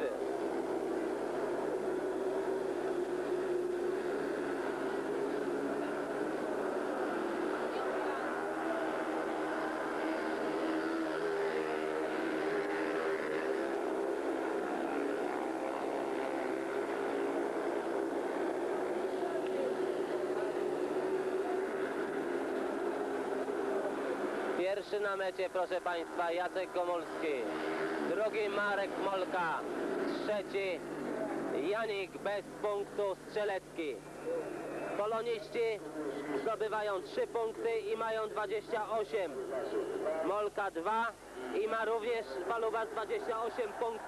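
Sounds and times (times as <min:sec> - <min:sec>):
motorcycle engines racing at high revs: 0:00.0 - 0:44.0.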